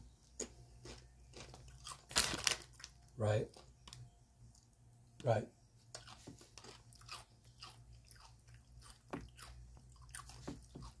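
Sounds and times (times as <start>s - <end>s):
person chewing crunchy chips: 0.3s - 3.7s, 5.9s - 11.0s.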